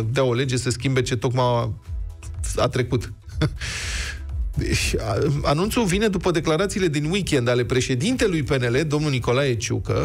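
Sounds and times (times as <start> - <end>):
man breathing in: 3.6 - 4.4.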